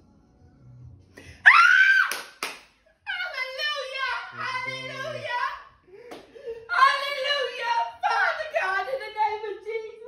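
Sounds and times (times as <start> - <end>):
woman shouting excitedly: 3.1 - 5.7, 6.7 - 10.0.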